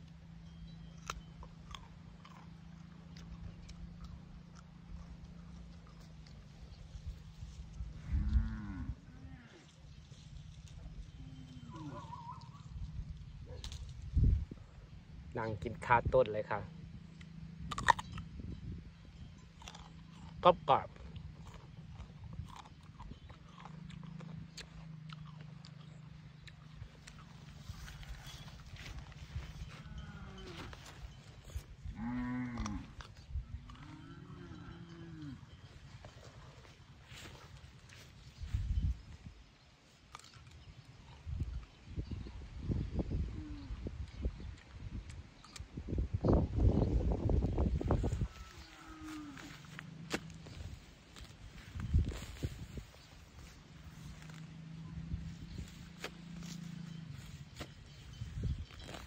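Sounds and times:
steady low hum: 0.0 - 59.0
cattle mooing: 8.0 - 9.7, 11.1 - 12.6, 29.6 - 31.1, 31.9 - 35.6, 47.9 - 50.6
animal low call: 10.7 - 13.6, 43.0 - 44.1
faint pitched animal calls: 10.8 - 13.6, 47.8 - 51.7
steady low rumble: 40.8 - 59.0.

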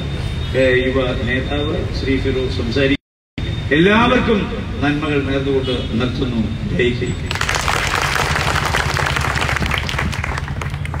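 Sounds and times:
audience applauding: 7.3 - 11.0.

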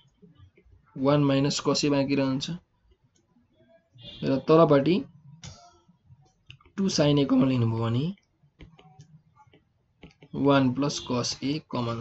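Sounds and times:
stylus tapping on pen tablet: 8.5 - 10.4.

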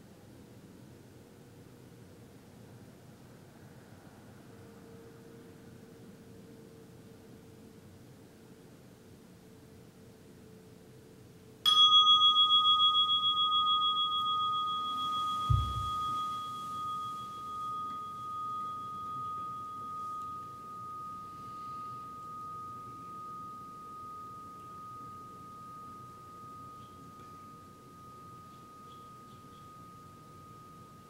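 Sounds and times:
meditation bell ringing: 11.7 - 31.0
short low thump: 15.5 - 16.0.

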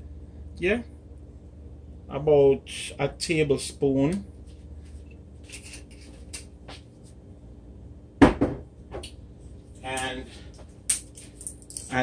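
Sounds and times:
loud thump on countertop: 8.2 - 8.7.

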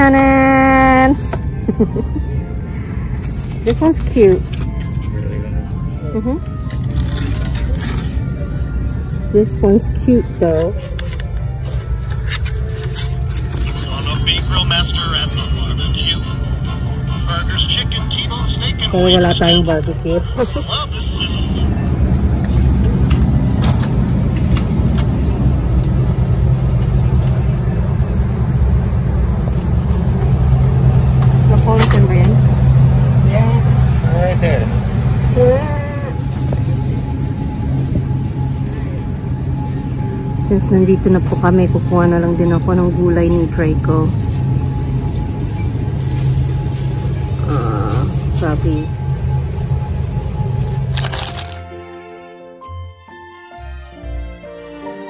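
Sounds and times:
low hum and rumble: 0.0 - 51.8
background music: 0.0 - 55.0
plastic packaging crackling: 50.9 - 51.7.

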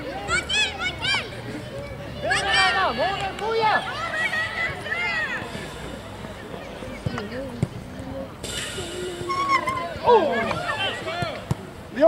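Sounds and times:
voices shouting: 0.0 - 7.4, 8.9 - 11.5.

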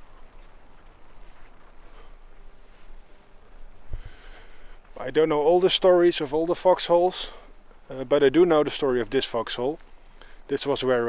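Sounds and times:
footsteps on leaf litter: 0.0 - 11.0.

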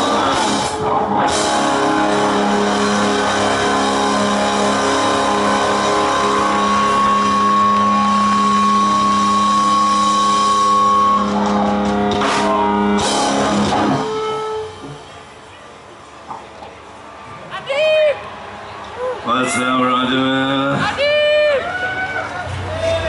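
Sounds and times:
drum kit hits: 0.0 - 8.8, 9.8 - 15.1
electric guitars sustained notes: 0.0 - 16.3.

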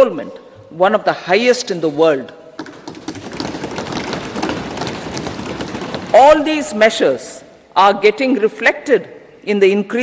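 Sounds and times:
hands thumping wooden desks: 2.6 - 6.7.

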